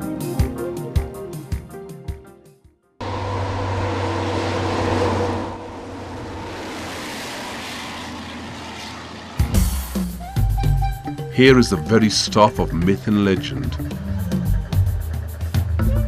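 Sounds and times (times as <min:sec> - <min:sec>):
background music: 0:00.0 - 0:02.9, 0:09.4 - 0:16.0
bus driving past: 0:03.0 - 0:11.4.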